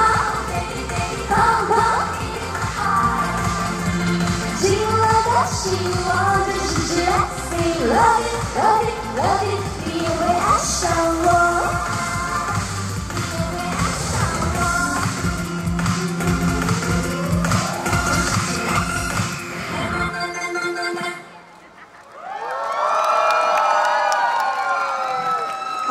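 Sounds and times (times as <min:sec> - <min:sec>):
pop dance music with heavy beat: 0:00.0 - 0:21.2
audience cheering and screaming: 0:16.0 - 0:19.8, 0:21.8 - 0:25.9.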